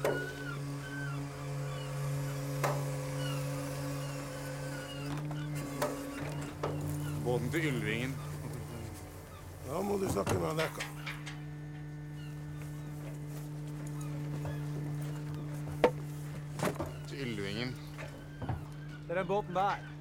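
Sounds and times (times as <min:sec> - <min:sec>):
motor humming: 0:00.0 - 0:20.0.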